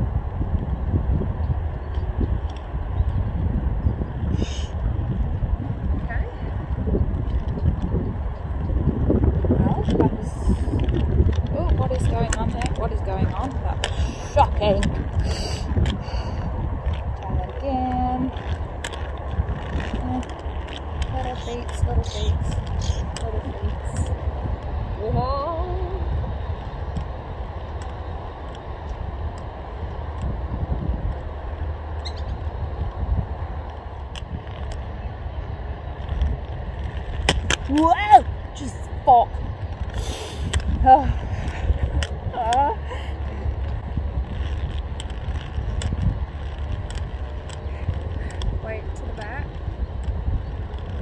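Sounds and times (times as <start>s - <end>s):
roller-skate wheels rolling: 0.0s - 51.0s
wind rumble on microphone: 0.0s - 51.0s.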